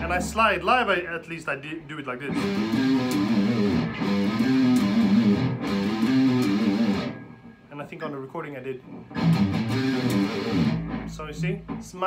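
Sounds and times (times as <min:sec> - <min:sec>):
electric guitar metal riff: 0:02.3 - 0:07.7, 0:08.9 - 0:12.0.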